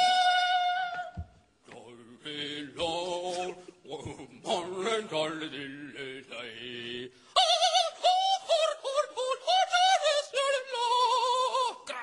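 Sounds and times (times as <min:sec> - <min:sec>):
man singing mock opera: 0:00.0 - 0:12.0.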